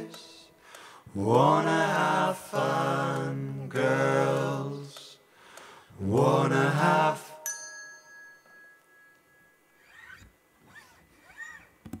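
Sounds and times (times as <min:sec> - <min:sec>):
small bell ringing: 0:07.4 - 0:09.6.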